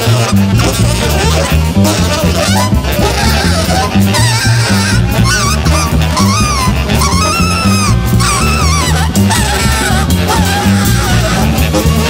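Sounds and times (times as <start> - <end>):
double bass walking: 0.0 - 12.0
saxophones and brass playing: 0.0 - 12.0.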